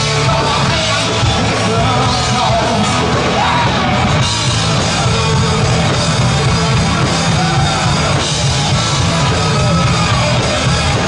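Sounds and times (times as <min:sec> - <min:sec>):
drum kit with crashing cymbals: 0:00.0 - 0:11.0
guitars: 0:00.0 - 0:11.0
person singing: 0:00.0 - 0:11.0.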